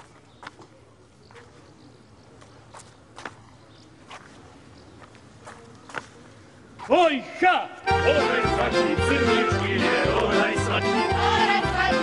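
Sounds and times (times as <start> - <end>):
feet stamping on stone paving: 0.0 - 1.6, 2.3 - 6.3.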